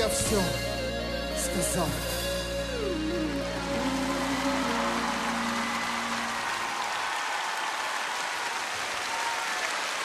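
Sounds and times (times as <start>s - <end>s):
audience applauding: 3.3s - 10.0s.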